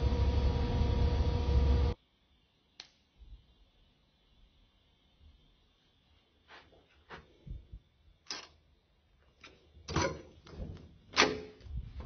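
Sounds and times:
low traffic rumble: 0.0 - 2.0.

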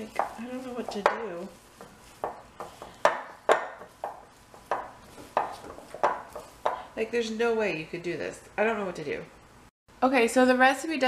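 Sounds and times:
dough slapping in glass bowl: 0.0 - 6.8.

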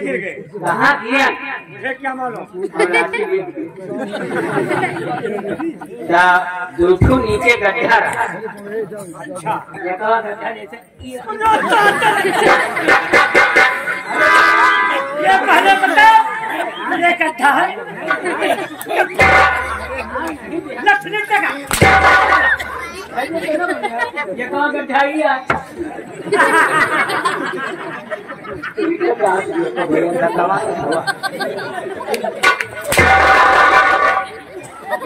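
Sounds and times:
man speaking through microphones: 0.0 - 4.0, 5.9 - 12.3, 28.9 - 31.2
voices talking over one another: 0.0 - 26.9
laugh: 2.6 - 6.1, 11.5 - 12.9, 17.9 - 20.7, 22.5 - 24.4, 25.8 - 29.2, 30.6 - 32.4.

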